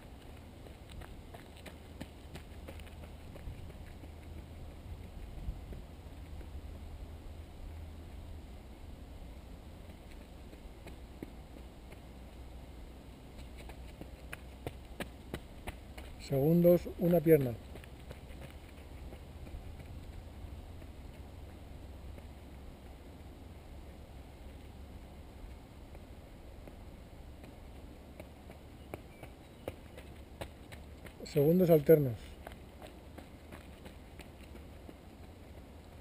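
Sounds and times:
footsteps on dirt path: 0:00.0 - 0:07.8, 0:09.7 - 0:36.0
steady low rumble: 0:00.0 - 0:36.0.

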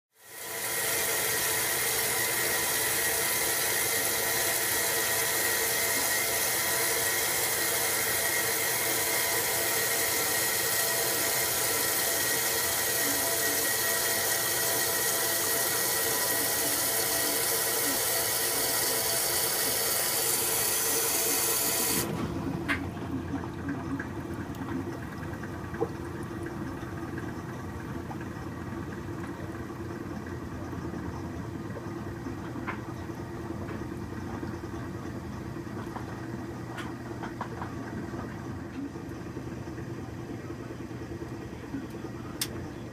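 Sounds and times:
washing machine motor: 0:00.2 - 0:42.9.

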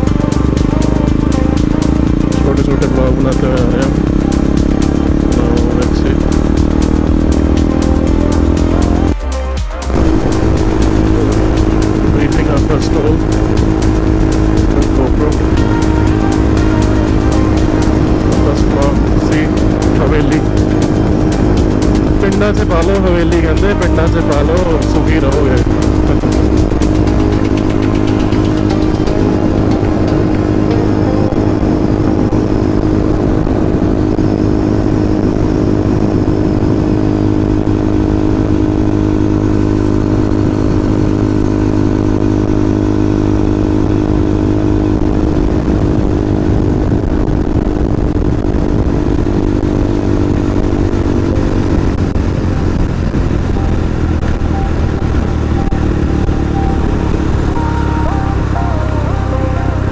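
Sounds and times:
motorcycle engine cruising: 0:00.0 - 0:59.9
wind rumble on microphone: 0:29.3 - 0:59.0.

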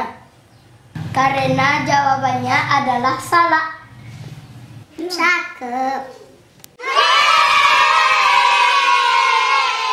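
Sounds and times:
children cheering: 0:06.8 - 0:09.9.

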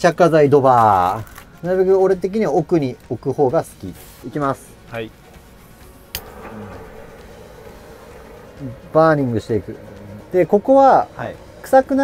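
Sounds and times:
gas torch hissing: 0:05.6 - 0:12.0.

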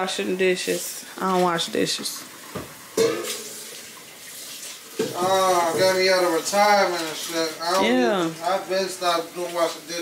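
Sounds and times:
tap water running into sink: 0:00.0 - 0:10.0.

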